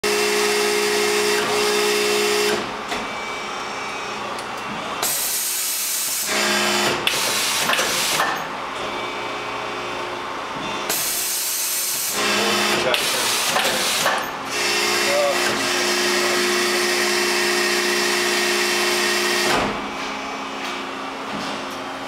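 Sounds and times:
machine humming: 0.0s - 22.0s
hydraulic rushing hiss: 5.0s - 6.4s.

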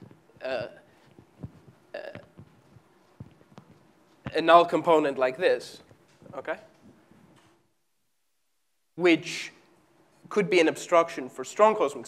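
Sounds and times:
footsteps on hard floor: 0.0s - 4.4s.

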